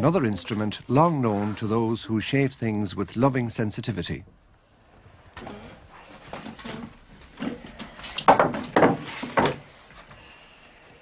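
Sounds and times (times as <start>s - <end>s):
wood scraping and knocking: 6.1s - 9.7s.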